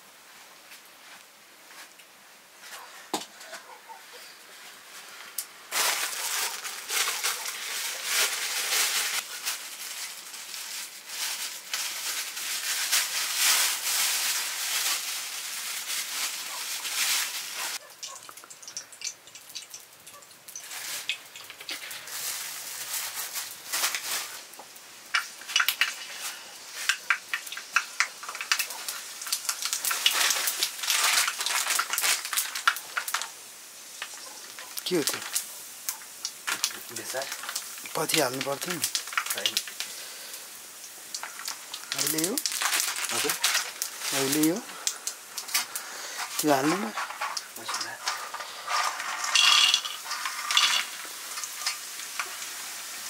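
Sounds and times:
seeds sizzling in hot oil: 0:04.5 - 0:53.0
small crackling pops: 0:05.2 - 0:15.1, 0:16.2 - 0:52.8.

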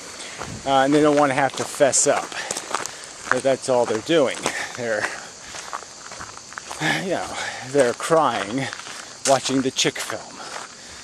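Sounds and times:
footsteps on woodland trail: 0:00.0 - 0:11.0.

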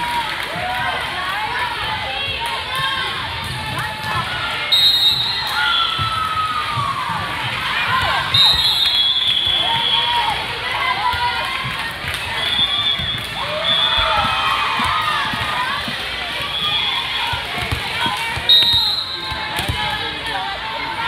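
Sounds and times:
people shouting and cheering: 0:00.0 - 0:21.0
whistle blasts: 0:04.7 - 0:06.1, 0:08.3 - 0:10.2, 0:12.4 - 0:14.2, 0:18.4 - 0:19.4
volleyball hits and thuds: 0:17.2 - 0:20.1.

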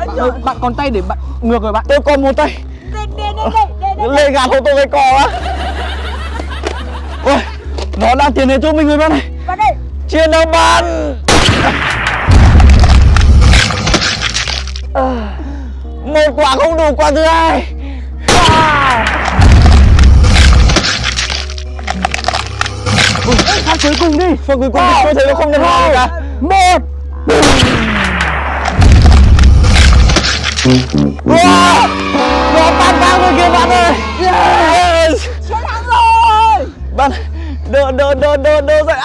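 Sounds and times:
explosion with deep rumble and crackling: 0:11.3 - 0:13.6, 0:19.4 - 0:20.3, 0:28.7 - 0:30.1.

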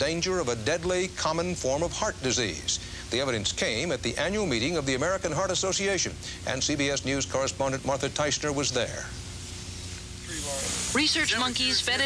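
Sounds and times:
faint steady hum: 0:00.0 - 0:12.0
steady high hiss: 0:00.0 - 0:12.0.

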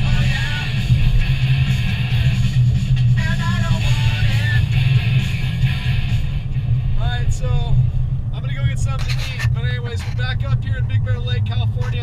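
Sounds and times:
car engine and road noise: 0:00.0 - 0:12.0
person talking: 0:08.4 - 0:12.0.

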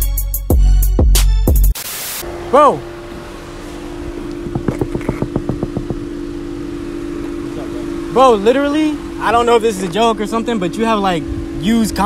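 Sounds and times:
rapid knocking on car window: 0:04.4 - 0:06.2.

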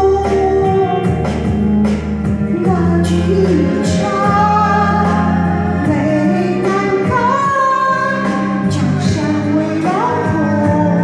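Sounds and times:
recorded musical accompaniment: 0:00.0 - 0:11.0
woman singing ballad: 0:00.0 - 0:11.0.

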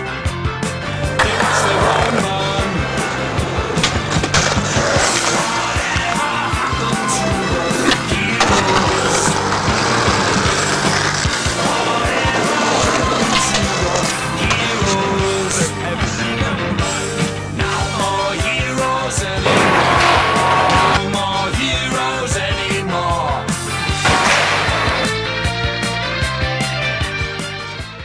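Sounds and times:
skateboards rolling: 0:00.8 - 0:21.0, 0:24.0 - 0:25.1
skateboards clacking on concrete: 0:00.9 - 0:18.2
music with steady bass: 0:14.0 - 0:28.0.

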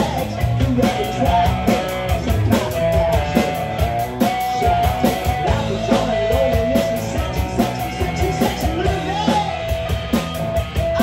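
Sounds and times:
drum kit steady beat: 0:00.0 - 0:11.0
electric guitars: 0:00.0 - 0:11.0.

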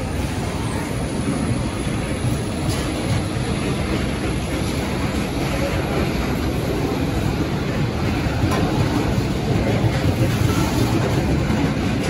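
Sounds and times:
freight train rumbling past: 0:00.0 - 0:12.0.

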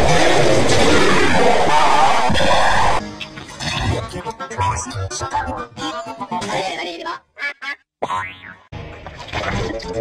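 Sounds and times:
distorted cartoon logo music: 0:03.6 - 0:06.4.

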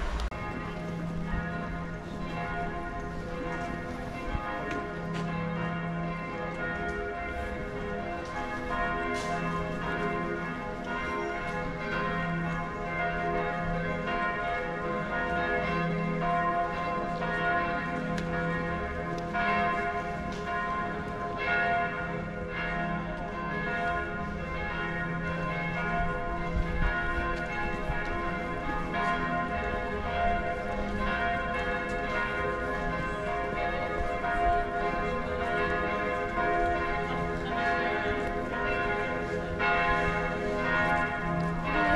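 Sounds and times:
church bells ringing: 0:00.0 - 0:41.9.

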